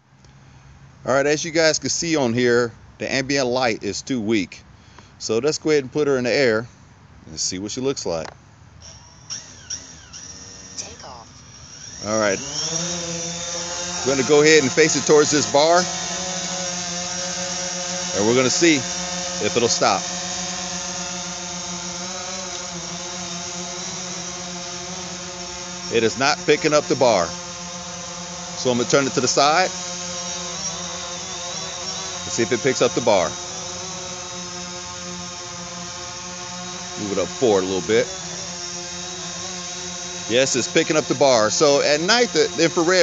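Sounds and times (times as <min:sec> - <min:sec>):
drone propellers buzzing: 0:00.0 - 0:43.0.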